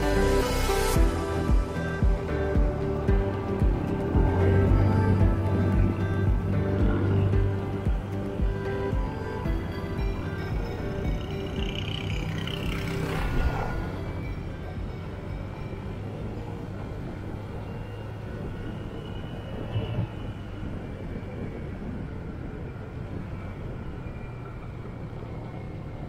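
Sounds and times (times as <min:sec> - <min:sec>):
motorcycle engine running: 0:00.0 - 0:15.9
road noise: 0:00.0 - 0:26.0
wind noise: 0:00.0 - 0:26.0.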